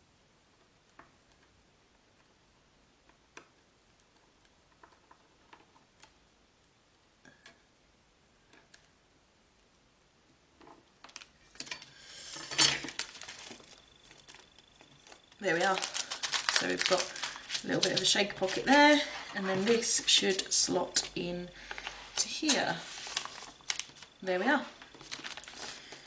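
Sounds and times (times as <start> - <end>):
plastic sheet rustling and crinkling: 12.2 - 26.0.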